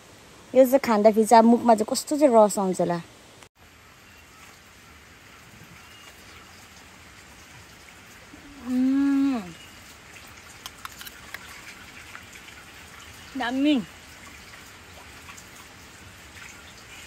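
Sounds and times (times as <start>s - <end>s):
faint steady hiss: 0.0s - 17.0s
person humming: 8.4s - 9.6s.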